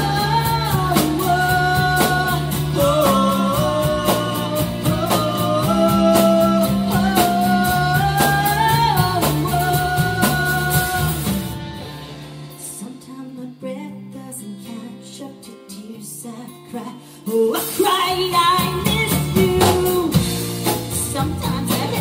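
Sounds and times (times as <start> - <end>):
live band music: 0.0 - 14.8, 17.2 - 22.0.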